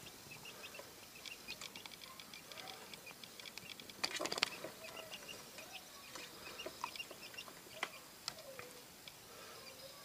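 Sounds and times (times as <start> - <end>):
quail chicks peeping: 0.0 - 10.0.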